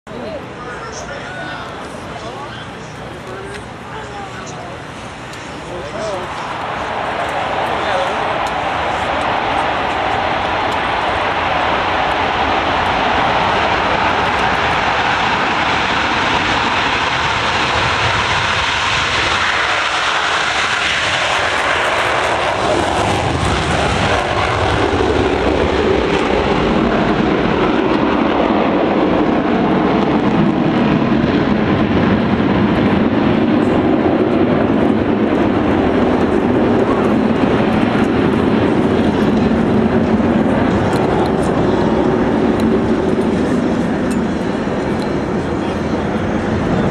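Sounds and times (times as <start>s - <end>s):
jets roaring overhead: 0.1s - 46.9s.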